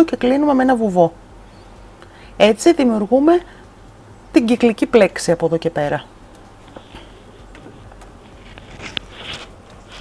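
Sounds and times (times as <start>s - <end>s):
low steady hum: 0.0s - 10.0s
crochet hook rustling yarn: 7.5s - 10.0s.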